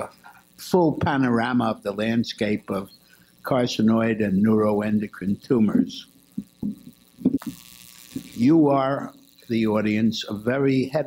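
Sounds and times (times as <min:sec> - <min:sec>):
sound system electrical hum: 0:00.0 - 0:11.0
soft low thumps: 0:06.3 - 0:08.4.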